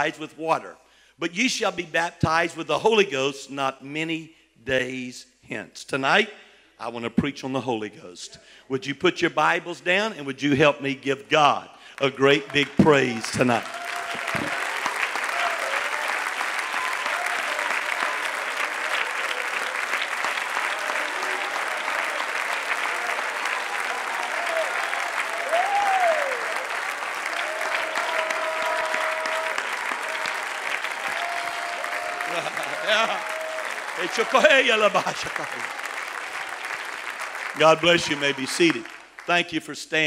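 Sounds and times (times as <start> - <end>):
congregation applauding: 12.0 - 39.6.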